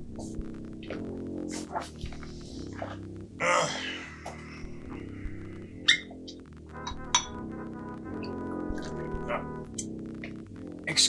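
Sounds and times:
background music with low tones: 0.0s - 11.0s.

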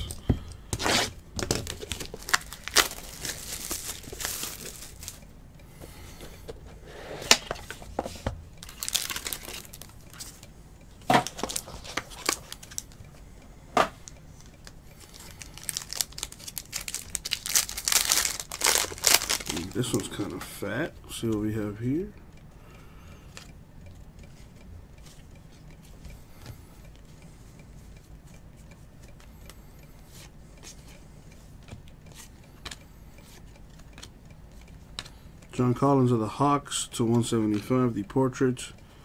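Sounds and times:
box wrapping being torn: 0.8s - 4.7s
foil pack crinkling: 0.9s - 5.2s, 8.6s - 9.9s, 11.2s - 12.9s, 15.0s - 20.2s.

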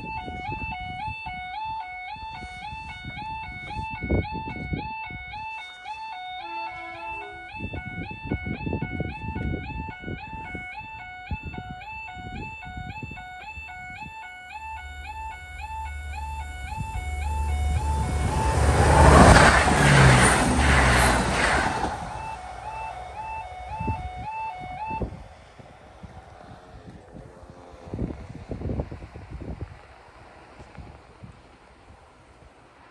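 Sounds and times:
level crossing alarm warbling: 0.0s - 25.2s
diesel train passing: 12.2s - 32.9s.

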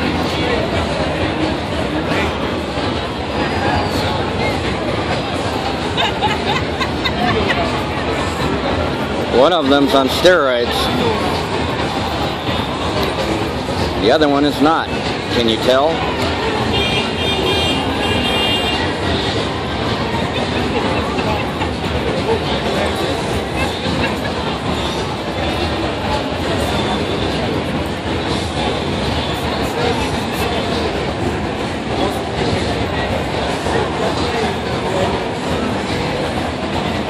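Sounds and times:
city street traffic: 0.0s - 37.0s
faint voices: 0.0s - 37.0s.

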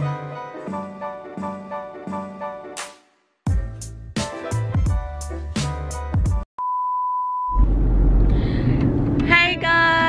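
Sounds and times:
upbeat intro music: 0.0s - 6.4s.

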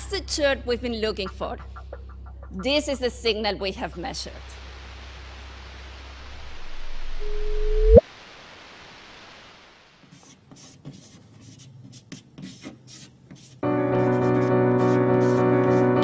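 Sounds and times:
low rumbling noise: 4.7s - 8.0s
upward sweeping chirp tone: 6.6s - 8.0s.

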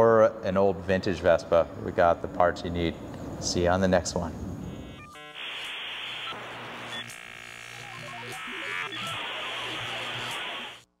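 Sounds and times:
buzzing static bursts: 4.6s - 10.9s
falling electronic bleeps: 4.7s - 10.9s.

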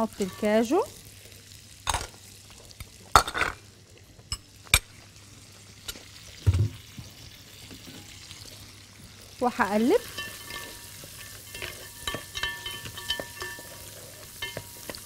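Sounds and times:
faint frying sizzle: 0.0s - 15.0s
nuts clattering into pot: 3.1s - 3.6s.

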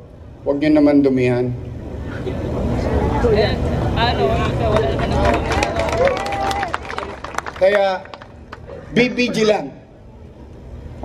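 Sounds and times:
steady low rumble: 0.0s - 11.0s
voices over outdoor crowd: 2.0s - 7.4s.

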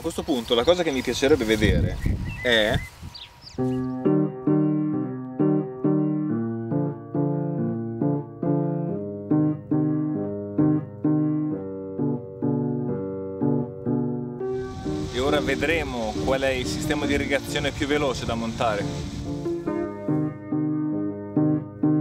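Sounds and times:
piano music: 3.6s - 22.0s.

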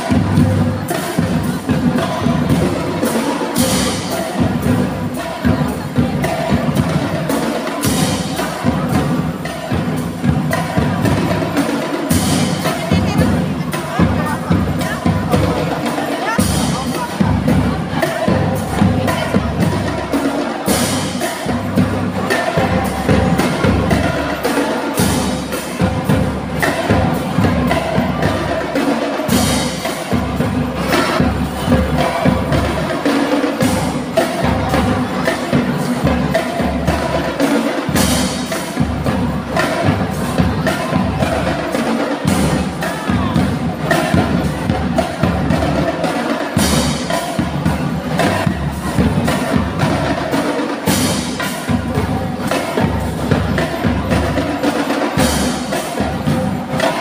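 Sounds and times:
marching band playing: 0.0s - 57.0s
snare and bass drums: 0.0s - 57.0s.

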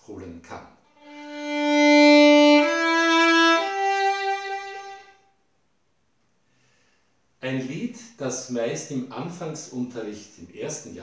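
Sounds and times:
violin long bowed notes: 1.0s - 5.3s.

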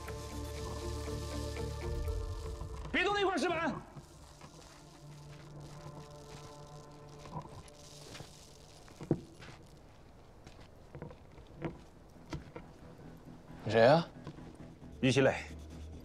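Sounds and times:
faint low drone: 0.0s - 9.4s
footsteps on concrete rubble: 3.8s - 13.2s.

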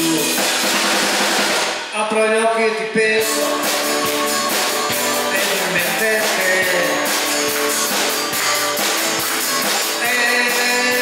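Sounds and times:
live band playing: 0.0s - 2.1s, 2.8s - 11.0s.

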